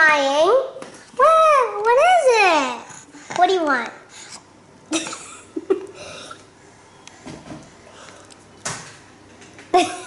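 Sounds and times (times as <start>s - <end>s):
small child coughing: 4.9s - 5.4s, 9.8s - 10.0s.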